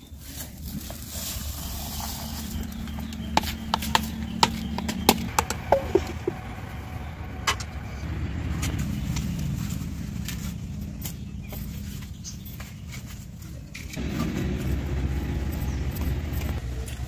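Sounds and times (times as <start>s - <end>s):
steady low rumble: 5.2s - 10.9s.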